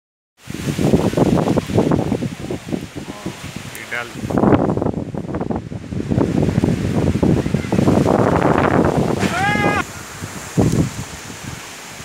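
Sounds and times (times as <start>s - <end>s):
storm wind buffeting microphone: 0.4s - 12.0s.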